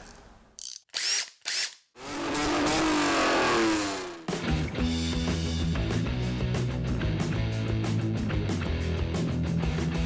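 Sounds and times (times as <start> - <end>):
power tool bursts: 0.9 - 4.3.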